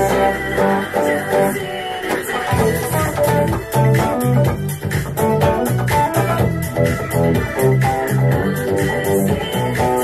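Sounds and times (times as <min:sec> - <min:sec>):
band recording with drum beat: 0:00.0 - 0:10.0
overdriven electric guitar: 0:00.0 - 0:10.0.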